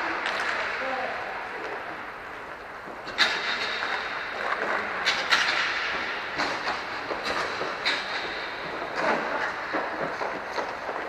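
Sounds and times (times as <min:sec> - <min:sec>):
hockey sticks clacking: 0:00.0 - 0:11.0
skate wheels rolling: 0:00.0 - 0:11.0.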